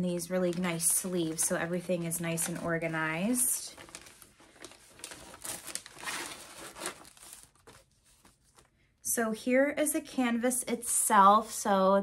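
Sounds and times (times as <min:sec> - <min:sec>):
packaging sleeve crinkling: 0:00.4 - 0:08.7.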